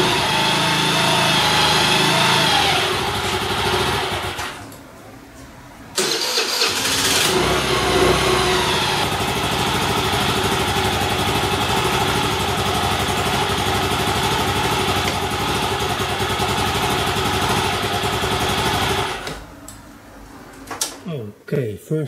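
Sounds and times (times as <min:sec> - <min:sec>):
scooter engine idling: 0:00.0 - 0:04.5, 0:06.0 - 0:19.3
scooter engine cranking: 0:00.0 - 0:04.6, 0:06.0 - 0:19.4.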